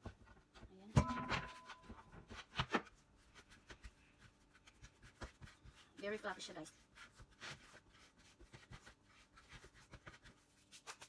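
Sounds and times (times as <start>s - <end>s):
hands kneading bread dough: 0.0s - 11.0s.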